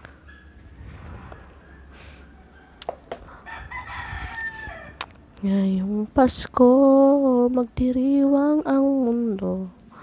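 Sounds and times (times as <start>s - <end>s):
rooster crowing: 1.1s - 5.0s.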